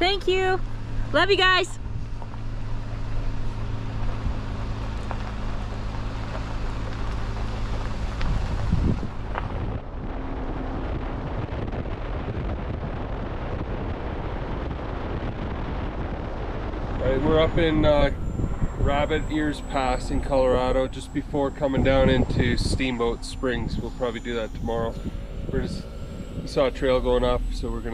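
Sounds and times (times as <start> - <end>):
car engine hum: 0.0 - 27.9
road noise: 0.0 - 27.9
wind rushing over microphone: 1.8 - 27.9.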